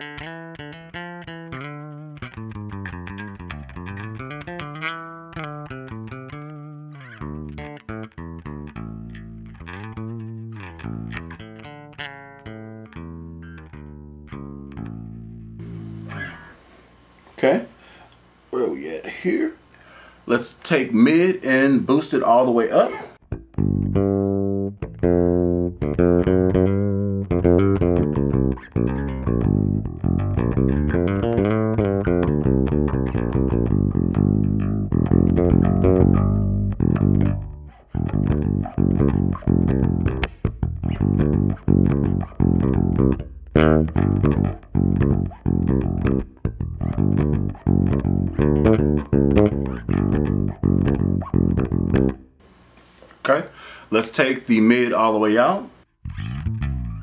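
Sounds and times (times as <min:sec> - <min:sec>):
fingerstyle electric bass: 0:00.0 - 0:16.7, 0:22.8 - 0:52.4, 0:55.9 - 0:57.0.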